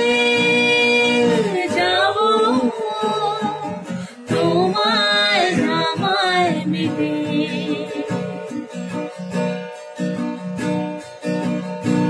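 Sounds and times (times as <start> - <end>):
man and woman singing: 0.0 - 9.0.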